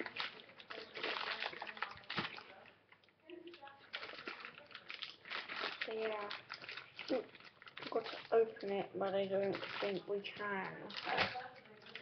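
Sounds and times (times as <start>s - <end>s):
plastic packaging crackling: 0.0s - 12.0s.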